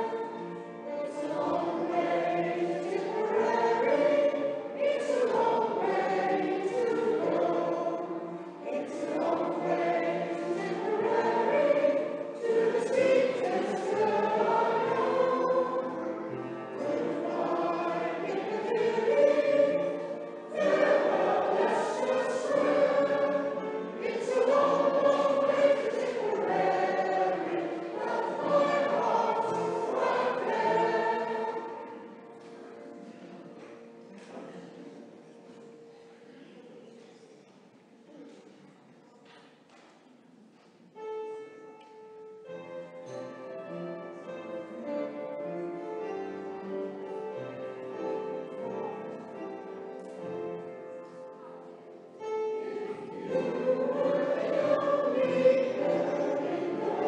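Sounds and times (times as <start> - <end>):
choir singing: 0.0 - 35.2, 44.2 - 57.0.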